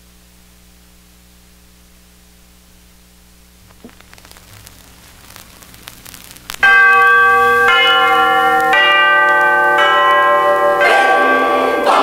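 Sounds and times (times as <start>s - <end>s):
vinyl record hissing and clicking: 0.0s - 9.5s
bell-like chimes: 6.6s - 12.0s.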